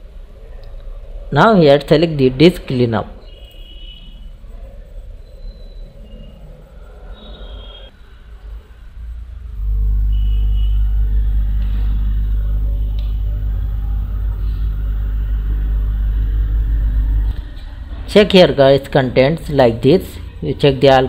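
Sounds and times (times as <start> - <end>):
deep steady rumble: 8.5 - 20.9.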